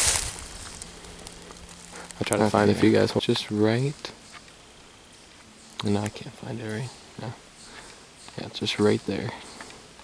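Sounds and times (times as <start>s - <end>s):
footsteps crunching dry leaves: 0.0s - 4.6s.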